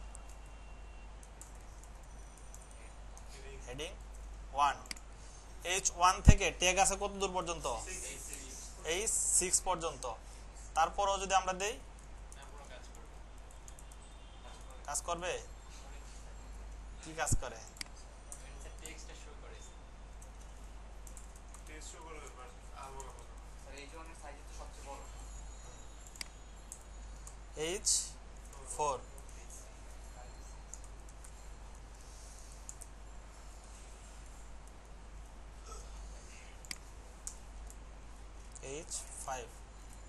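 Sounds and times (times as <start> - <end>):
low electrical hum: 0.0 - 40.0
computer keyboard clicks: 1.2 - 3.3, 12.0 - 14.7, 20.2 - 22.3, 26.0 - 27.4, 30.7 - 31.4, 32.6 - 32.9
keyboard keys clicking: 1.2 - 3.3, 12.9 - 14.7.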